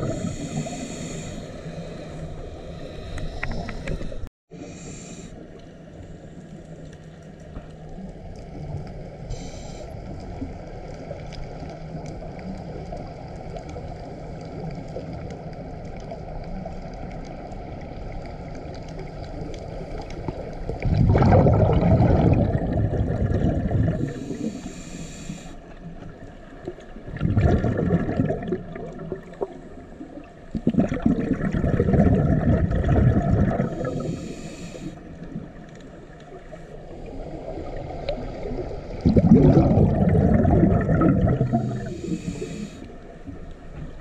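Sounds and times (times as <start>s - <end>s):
exhaled bubbles rushing: 0.0s - 0.8s, 20.2s - 24.6s, 26.6s - 34.2s, 36.3s - 42.4s
high hiss of inhalation: 0.1s - 5.4s, 24.0s - 25.6s, 33.8s - 35.0s, 41.7s - 42.9s.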